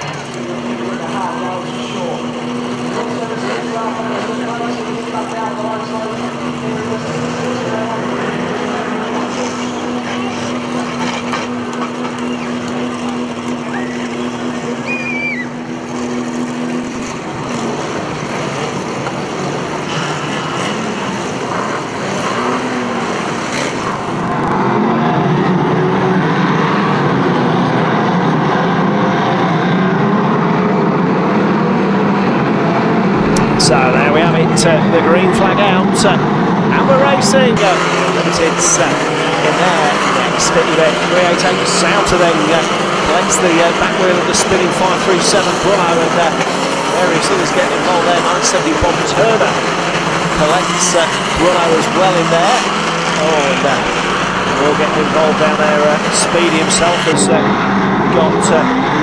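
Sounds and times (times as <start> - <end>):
racing car engines: 0.0 - 59.0.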